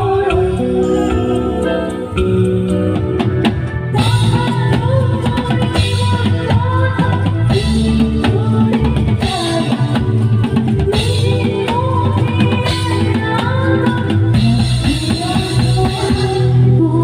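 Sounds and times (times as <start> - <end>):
woman singing into a microphone: 0.0 - 2.7, 3.8 - 17.0
live band playing: 0.0 - 17.0.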